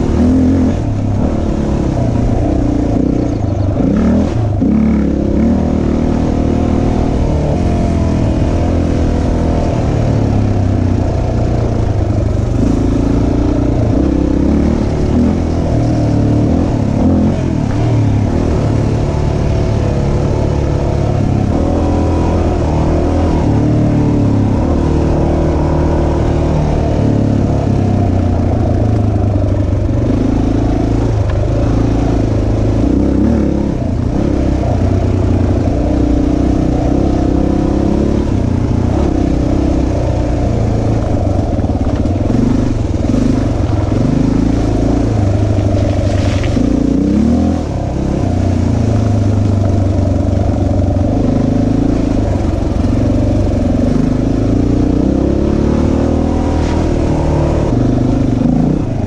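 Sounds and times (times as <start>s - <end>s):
dirt bike engine running: 0.0s - 59.0s.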